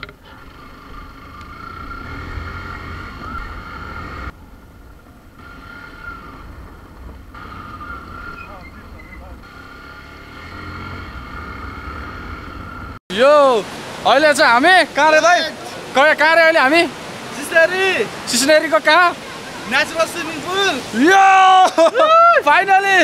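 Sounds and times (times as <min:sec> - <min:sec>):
motorcycle engine running: 0:00.0 - 0:04.5.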